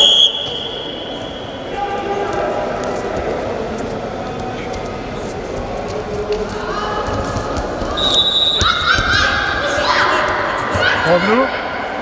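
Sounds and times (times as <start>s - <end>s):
referee's whistle blast: 0.0s - 1.7s, 8.0s - 8.7s.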